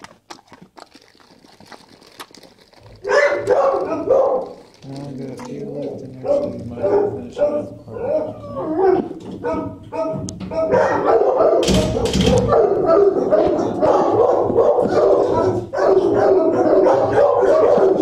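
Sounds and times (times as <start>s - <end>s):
dogs barking and howling: 2.9s - 18.0s.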